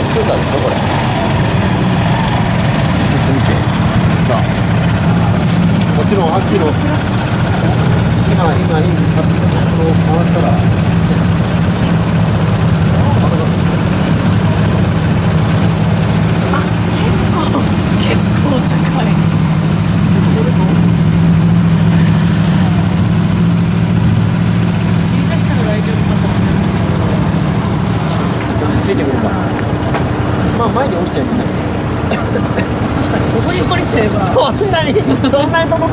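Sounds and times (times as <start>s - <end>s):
scooter engine idling: 0.0s - 35.9s.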